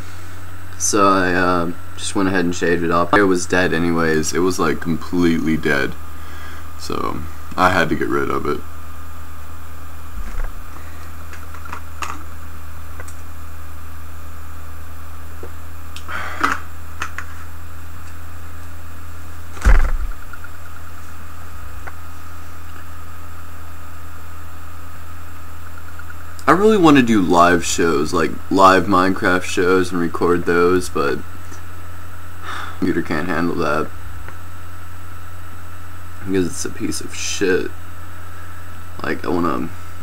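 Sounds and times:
steady low hum: 0.0s - 40.0s
loud thump with rattle: 10.2s - 10.6s, 19.6s - 20.3s.

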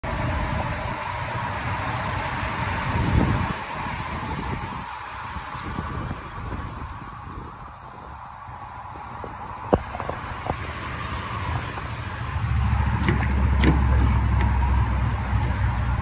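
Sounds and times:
vehicle engine low rumble: 0.0s - 16.0s.

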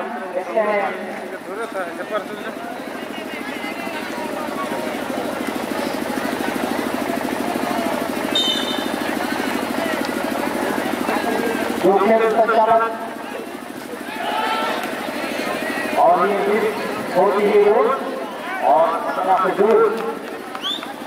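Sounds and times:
motor running with fast throb: 0.0s - 21.0s.

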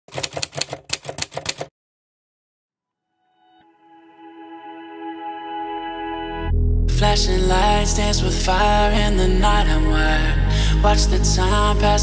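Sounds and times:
typewriter key clicks: 0.1s - 1.7s.

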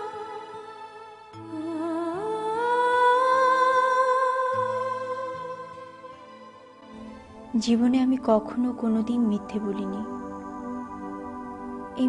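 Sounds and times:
soft low accompaniment: 6.3s - 12.0s.

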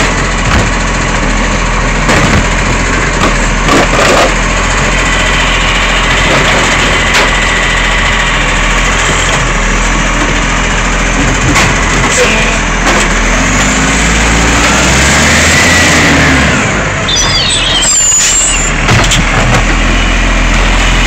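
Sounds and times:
garbage truck diesel engine running: 0.0s - 21.0s.

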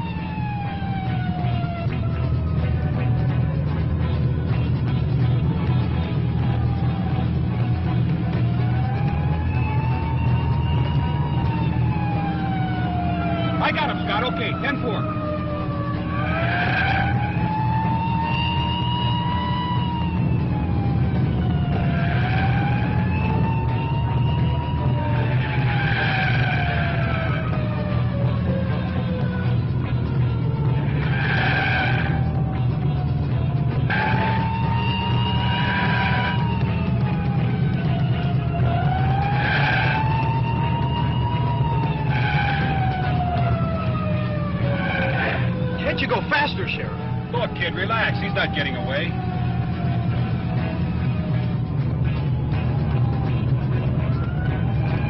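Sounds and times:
car engine and road rumble: 0.0s - 55.0s
police siren wailing: 0.0s - 55.0s.

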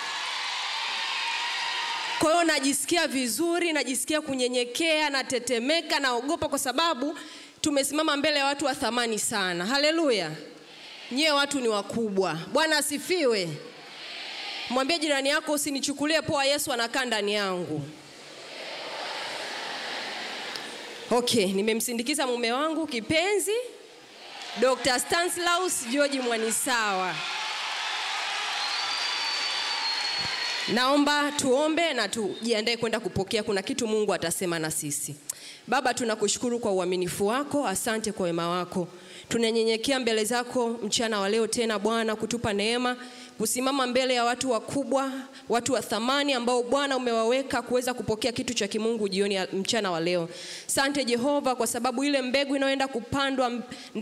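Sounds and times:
audience applauding and cheering: 0.0s - 2.3s, 18.3s - 21.1s, 24.2s - 31.3s.

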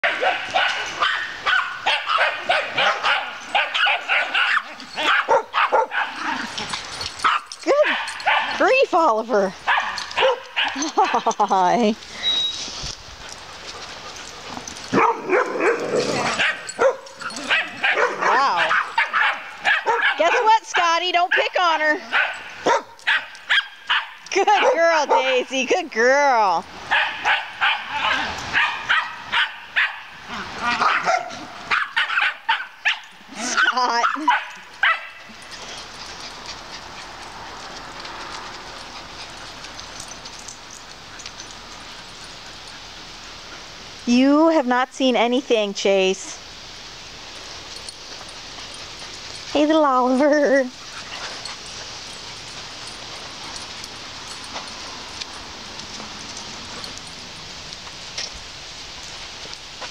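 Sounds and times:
dog barking: 0.0s - 6.2s, 7.2s - 8.6s, 9.7s - 10.7s, 14.9s - 20.5s, 22.1s - 25.3s, 26.9s - 30.1s, 30.8s - 33.0s, 33.6s - 35.2s.

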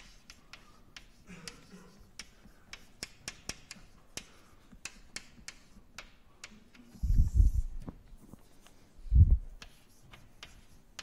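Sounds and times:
chalk tapping on blackboard: 0.0s - 8.8s, 9.5s - 11.0s
chalk scratching: 0.0s - 11.0s.

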